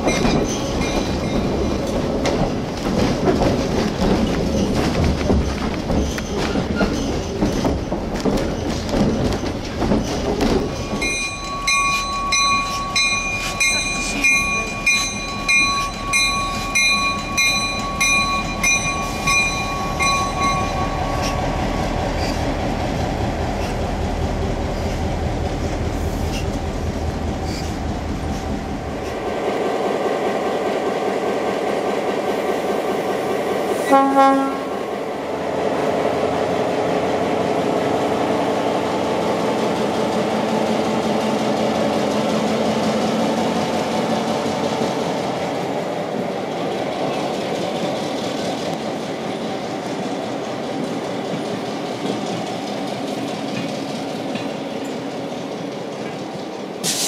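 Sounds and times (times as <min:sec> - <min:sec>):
locomotive bell ringing: 0:00.0 - 0:02.0, 0:10.7 - 0:22.4
diesel locomotive running: 0:00.0 - 0:57.0
train rumbling past: 0:00.0 - 0:57.0
train horn blast: 0:33.8 - 0:34.7.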